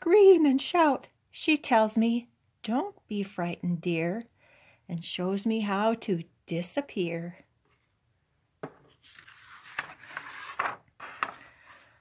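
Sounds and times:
book page rustling: 0:08.7 - 0:12.0.

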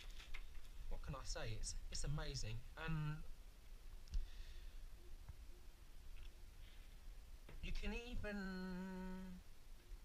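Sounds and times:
plastic frame handling noise: 0:00.0 - 0:00.9.

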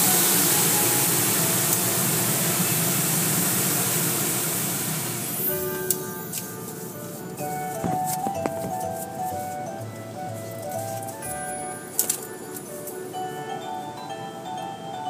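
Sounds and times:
high-pressure water spray hissing: 0:00.0 - 0:07.4
simple electronic melody: 0:05.3 - 0:15.0.

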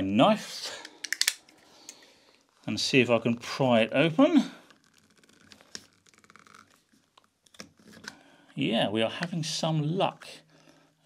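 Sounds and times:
knife scraping plastic: 0:04.6 - 0:08.2.

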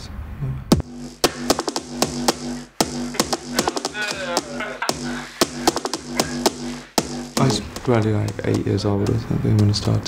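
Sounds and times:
pulsing synth bass note: 0:00.7 - 0:08.6
clicky drum-machine hits: 0:00.7 - 0:10.0.

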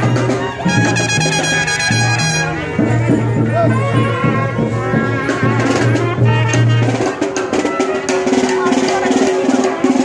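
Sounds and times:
brass band music: 0:00.0 - 0:10.0.

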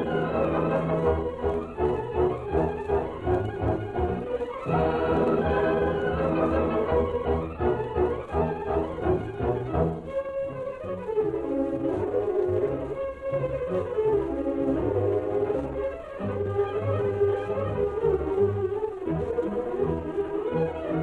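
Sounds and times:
orchestral music: 0:00.0 - 0:21.0.

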